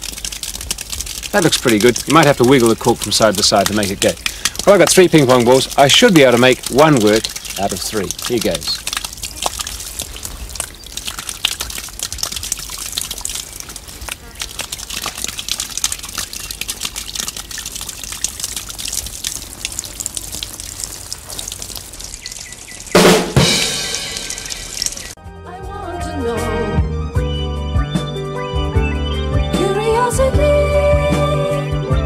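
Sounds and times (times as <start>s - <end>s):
water jet spraying and splashing: 0.0s - 25.2s
music: 23.0s - 24.2s, 25.2s - 32.0s.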